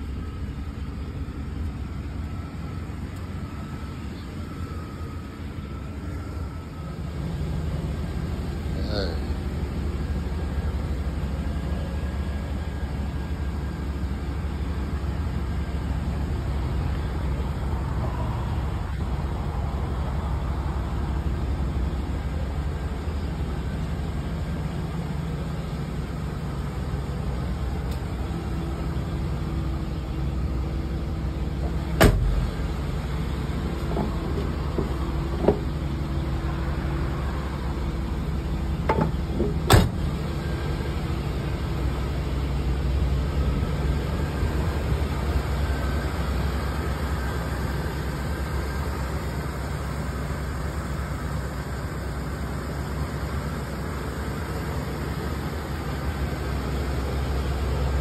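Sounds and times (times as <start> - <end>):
car engine idling: 0.0 - 58.0.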